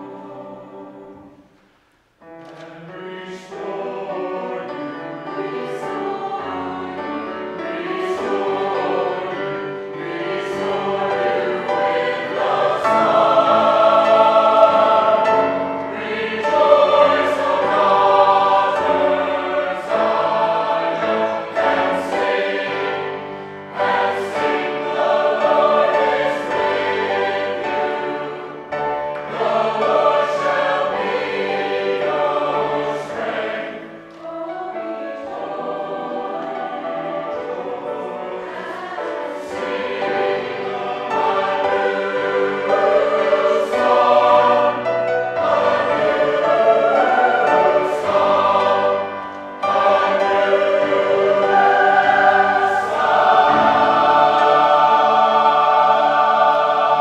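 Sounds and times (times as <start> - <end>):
choir singing: 0.0 - 1.6, 2.2 - 57.0
piano accompaniment: 2.2 - 57.0.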